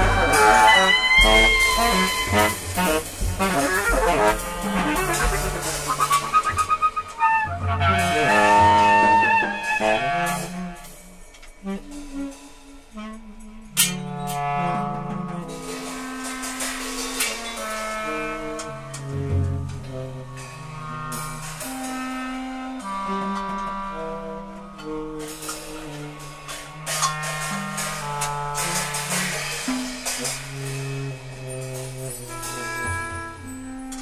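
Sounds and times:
cymbal haze: 0.0s - 34.0s
held reed note: 0.0s - 34.0s
cymbal strikes: 24.8s - 34.0s.

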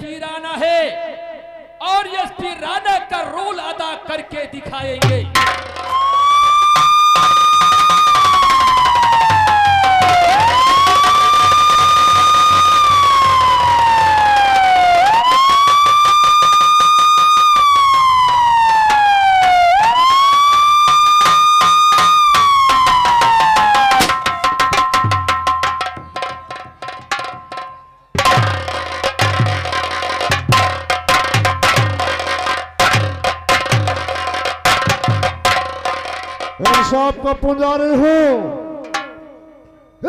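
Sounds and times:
electronic police siren wailing: 5.8s - 24.8s.

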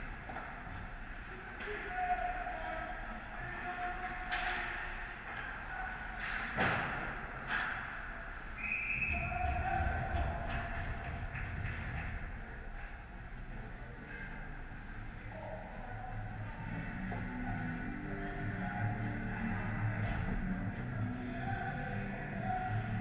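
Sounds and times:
echoing rink hum: 0.0s - 23.0s.

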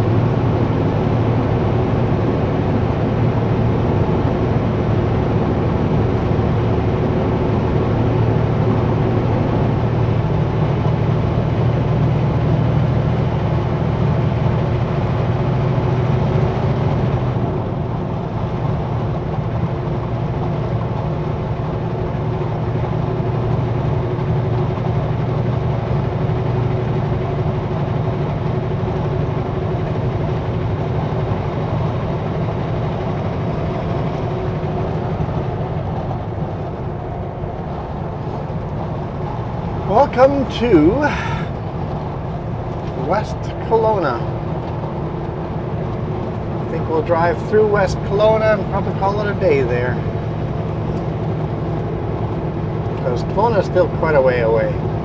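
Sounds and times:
diesel truck engine drone: 0.0s - 55.0s
tyre and road noise: 0.0s - 55.0s.

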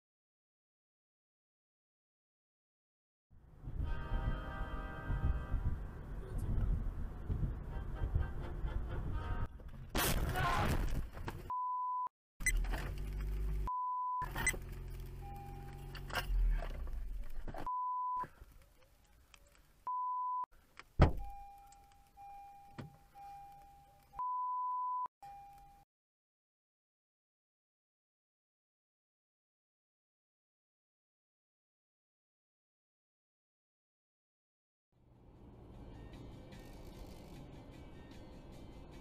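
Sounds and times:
road and engine noise: 3.4s - 11.5s, 12.4s - 19.9s, 35.0s - 39.0s
people speaking: 6.1s - 6.8s, 10.2s - 10.8s
censor beeps: 11.5s - 12.6s, 13.7s - 14.6s, 17.7s - 18.3s, 19.9s - 20.5s, 21.2s - 25.8s.

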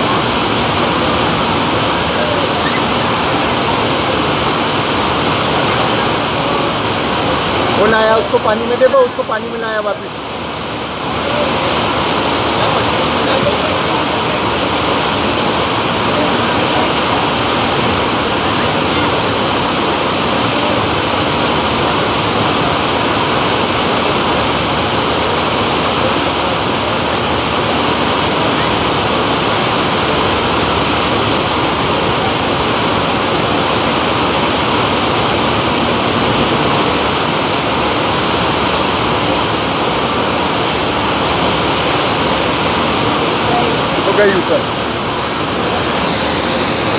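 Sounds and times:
water rushing: 0.0s - 46.9s.

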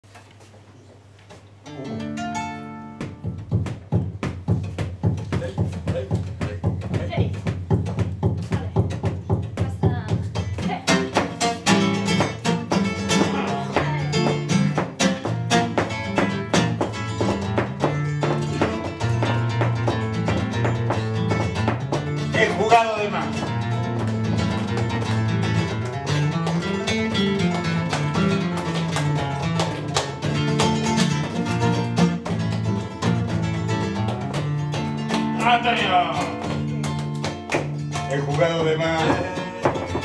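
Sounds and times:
nylon-string guitar playing: 1.6s - 5.1s, 7.1s - 40.0s.

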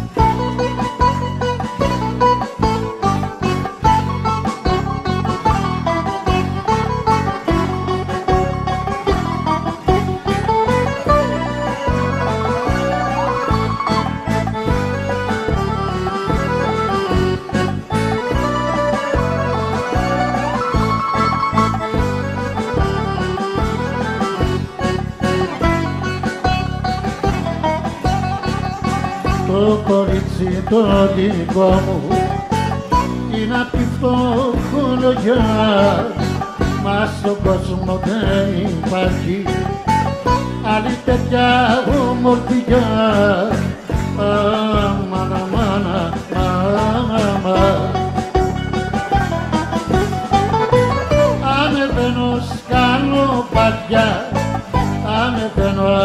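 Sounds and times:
plucked string melody: 0.0s - 56.0s
steady bass beat: 0.0s - 56.0s.

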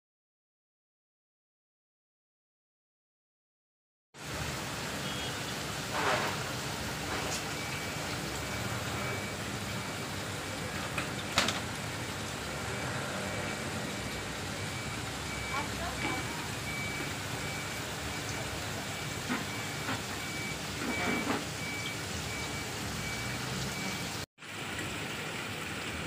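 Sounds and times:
aquarium bubbling water: 4.2s - 26.0s
high electronic beep: 7.6s - 9.9s, 14.6s - 24.0s.

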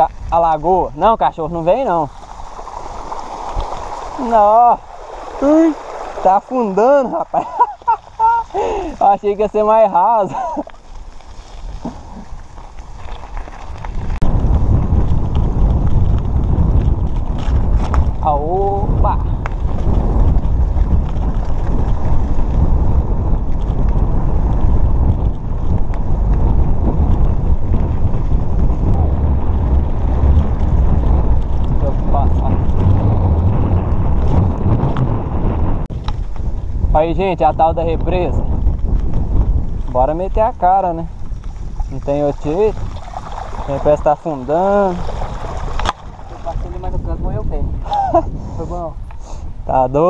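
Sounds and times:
tyre noise on dirt road: 0.0s - 50.0s
wind buffeting microphone: 0.0s - 50.0s.

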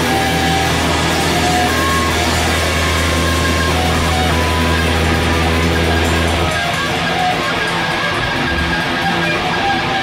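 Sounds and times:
distorted electric guitar: 0.0s - 10.0s
high held notes: 0.0s - 10.0s
low drone: 0.0s - 10.0s.

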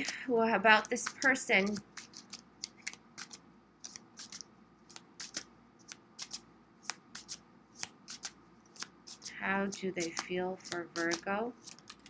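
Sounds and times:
cards being shuffled: 0.8s - 12.0s.

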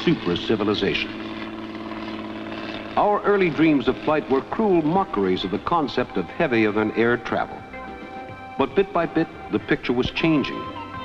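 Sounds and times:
engine-like drone with flutter: 0.0s - 11.0s.

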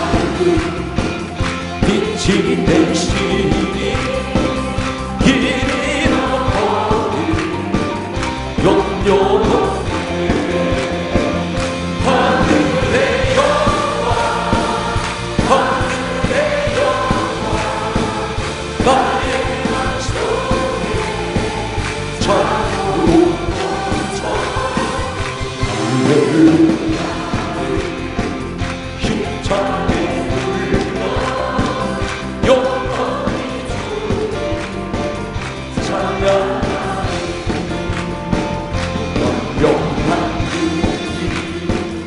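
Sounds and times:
congregation singing a hymn: 0.0s - 42.0s
drums steady beat: 0.0s - 42.0s
worship band playing: 0.0s - 42.0s.

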